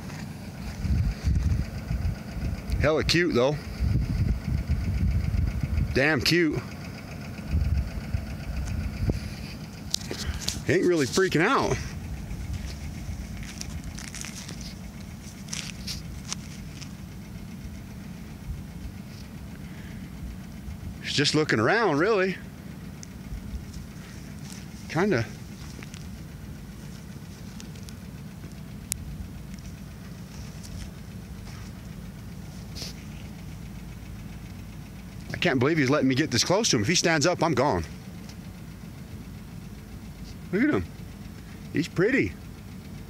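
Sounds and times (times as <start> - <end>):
footsteps on dry dirt: 0.0 - 1.7, 9.2 - 17.2, 23.6 - 28.7, 29.4 - 33.3
low rumble: 0.0 - 35.6
wind buffeting microphone: 0.7 - 2.8, 3.7 - 6.0, 7.5 - 9.4.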